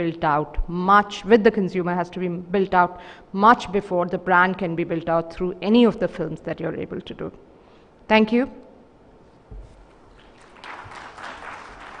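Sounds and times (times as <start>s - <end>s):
audience applauding: 10.1s - 12.0s.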